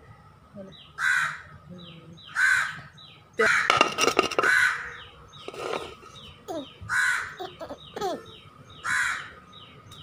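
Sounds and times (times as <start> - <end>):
crows cawing: 1.0 - 1.5, 2.3 - 3.8, 4.4 - 5.0, 6.9 - 7.5, 8.8 - 9.3
small bird chirping: 4.4 - 10.0.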